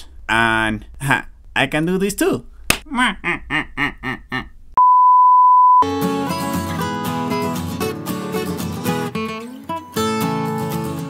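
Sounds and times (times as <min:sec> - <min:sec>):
person laughing: 0:02.8 - 0:04.6
test-card beep tone: 0:04.8 - 0:05.8.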